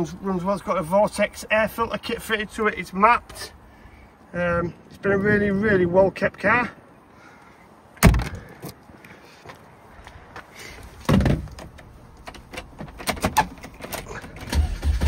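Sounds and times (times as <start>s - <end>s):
dull thump: 8.0s - 8.4s, 11.0s - 11.7s
car engine starting: 13.0s - 15.0s.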